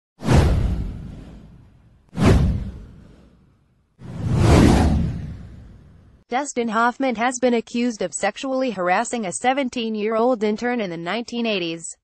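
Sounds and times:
whoosh sound effects: 0:00.2 - 0:06.1.

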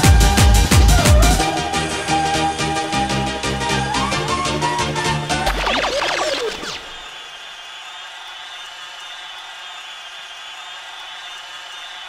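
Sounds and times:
falling synth sweep: 0:04.9 - 0:07.1.

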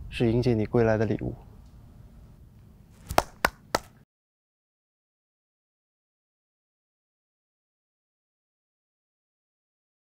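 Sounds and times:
sharp taps: 0:03.1 - 0:04.0.

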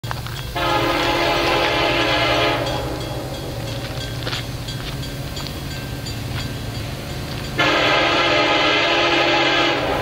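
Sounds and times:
locomotive air horn blast: 0:00.6 - 0:03.0, 0:07.6 - 0:10.0.

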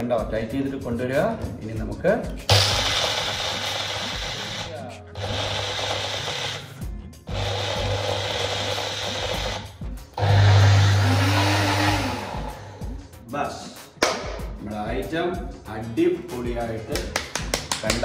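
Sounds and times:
blender grinding nuts: 0:02.5 - 0:12.6.

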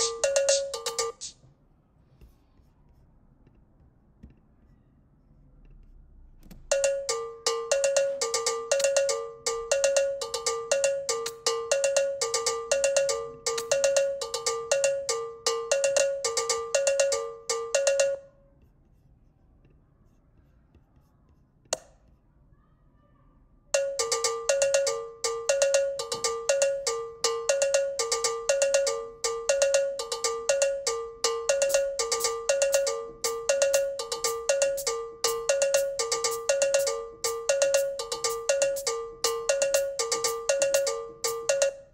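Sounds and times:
synthesized cowbell pattern: 0:00.0 - 0:01.3, 0:06.7 - 0:18.4, 0:23.8 - 0:41.9.

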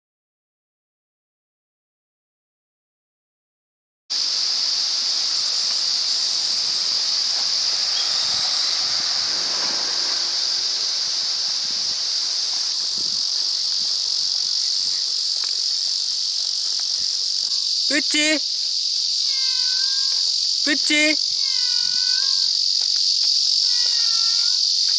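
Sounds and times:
high-pitched insect chorus: 0:04.1 - 0:24.9.

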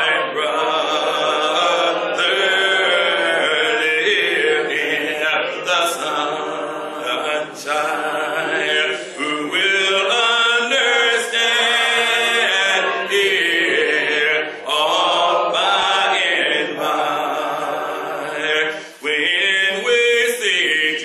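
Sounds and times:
man singing unaccompanied: 0:00.0 - 0:21.0.

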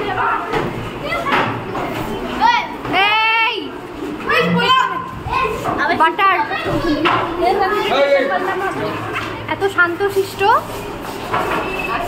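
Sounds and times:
general chatter: 0:00.0 - 0:12.0
children shouting: 0:04.2 - 0:05.8.

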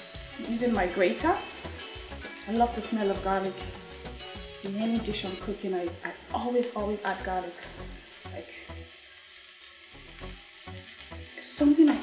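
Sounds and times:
onions sizzling in oil: 0:00.0 - 0:12.0.

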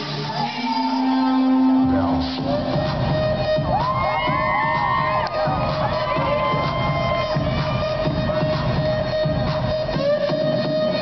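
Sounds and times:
audience cheering and whooping: 0:00.0 - 0:08.8
electronic dance music: 0:00.0 - 0:11.0.

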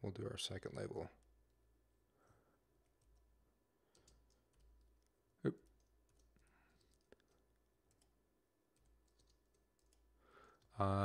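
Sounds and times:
keyboard keys clicking: 0:08.8 - 0:10.0.

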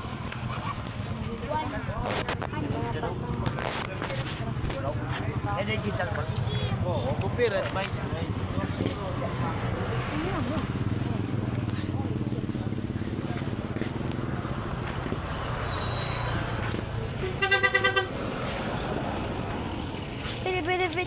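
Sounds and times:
vehicle engine running: 0:00.0 - 0:21.0
pulsing vehicle horn: 0:17.2 - 0:18.4.

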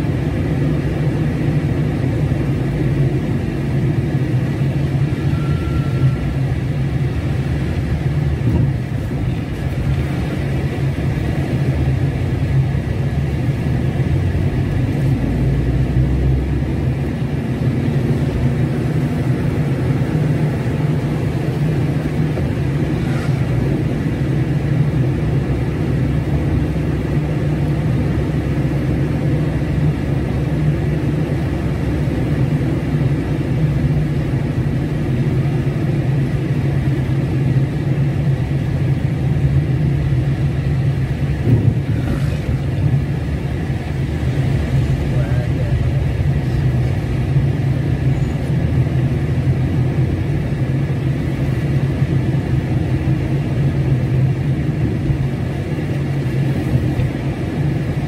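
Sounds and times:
car engine and road drone: 0:00.0 - 0:58.0.

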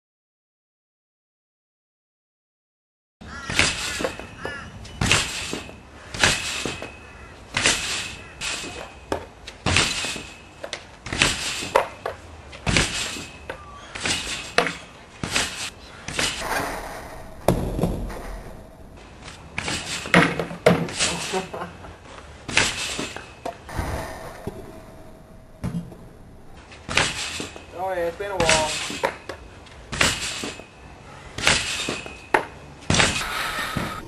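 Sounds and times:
trampoline bouncing thumps: 0:03.4 - 0:21.6, 0:22.4 - 0:30.7, 0:31.4 - 0:33.2.

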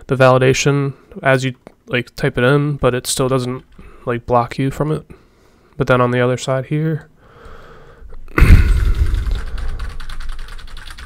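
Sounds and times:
heavy thump: 0:08.4 - 0:09.5
rapid keyboard typing: 0:08.7 - 0:11.0.

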